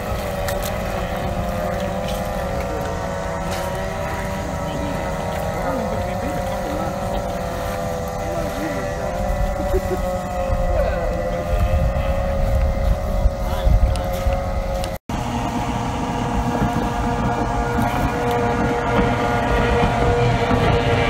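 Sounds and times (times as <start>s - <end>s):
racing boat engines: 0.0s - 21.0s
wind on microphone: 0.0s - 21.0s.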